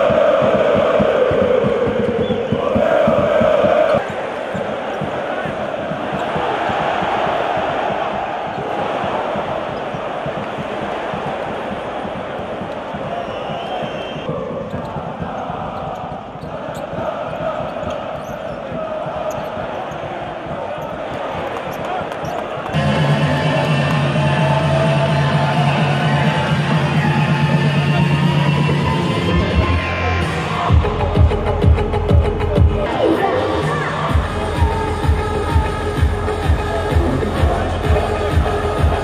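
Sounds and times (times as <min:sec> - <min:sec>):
thumping beat: 0:00.0 - 0:32.9, 0:33.7 - 0:39.0
arena crowd noise: 0:00.0 - 0:39.0.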